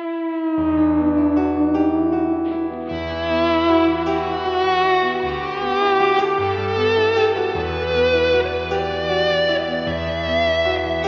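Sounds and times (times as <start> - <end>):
long held note: 0.0 - 11.0.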